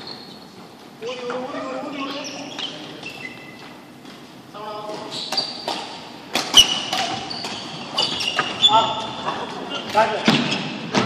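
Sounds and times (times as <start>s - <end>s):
shoes squeaking on court floor: 0.0s - 11.0s
badminton shuttlecock hit: 5.3s - 8.6s.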